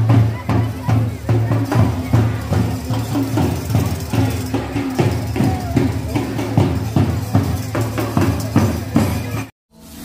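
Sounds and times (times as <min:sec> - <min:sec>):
marching drums beating: 0:00.0 - 0:09.5.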